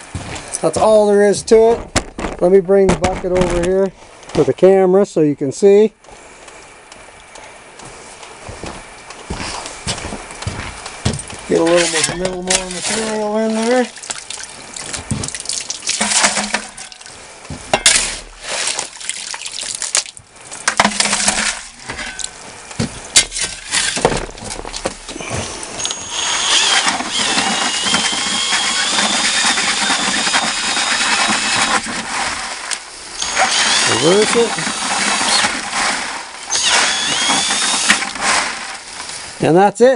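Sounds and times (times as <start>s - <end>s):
gravel and water churning: 10.2s - 39.6s
gravel shovelled into water bucket: 11.5s - 17.1s, 17.8s - 22.5s, 23.1s - 25.6s, 28.9s - 32.9s, 33.8s - 39.4s
cordless drill running: 25.1s - 32.4s, 33.1s - 35.8s, 36.4s - 38.8s.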